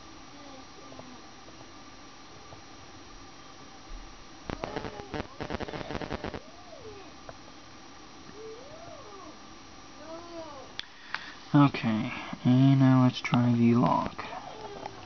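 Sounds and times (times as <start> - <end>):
animal calls: 8.3 - 9.4.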